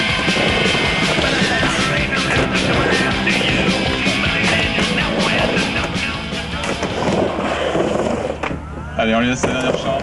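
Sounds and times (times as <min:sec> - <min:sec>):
rock music: 0:00.0 - 0:07.8
skateboard wheels rolling: 0:00.0 - 0:10.0.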